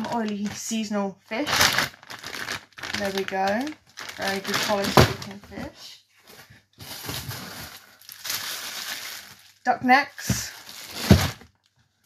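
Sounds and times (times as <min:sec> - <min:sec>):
plastic bags rustling: 0:00.0 - 0:12.0.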